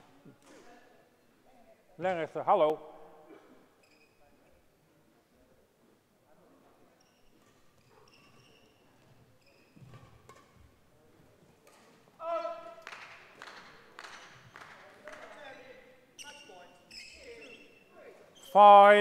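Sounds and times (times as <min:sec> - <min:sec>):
court shoes squeaking: 0:03.7 - 0:04.6, 0:06.9 - 0:10.8, 0:15.2 - 0:18.6.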